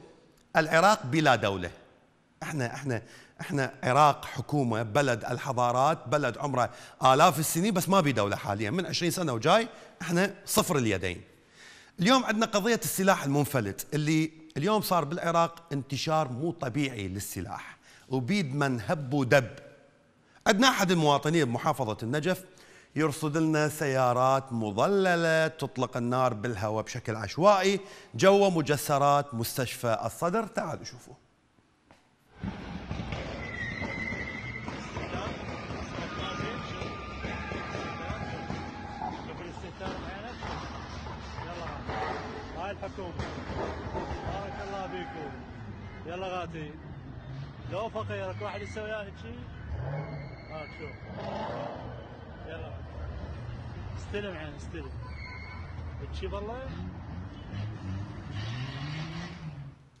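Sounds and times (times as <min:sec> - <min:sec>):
din of cars: 0:42.8 - 0:55.1, 0:55.7 - 1:00.0
car engine revving: 0:55.8 - 0:59.8.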